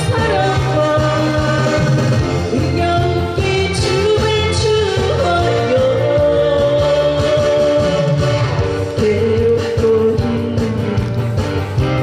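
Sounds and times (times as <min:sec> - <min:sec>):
instrumental accompaniment: 0:00.0 - 0:12.0
woman singing pop song: 0:00.0 - 0:12.0.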